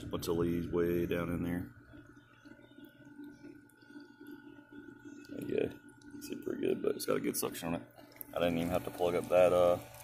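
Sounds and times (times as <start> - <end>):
faint steady hum: 0.0 - 10.0
water trickling and gurgling: 1.8 - 7.0.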